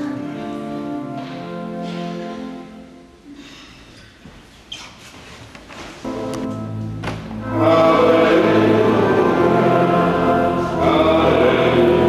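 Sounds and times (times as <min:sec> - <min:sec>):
voices singing liturgical music: 0:00.0 - 0:03.0, 0:06.0 - 0:12.0.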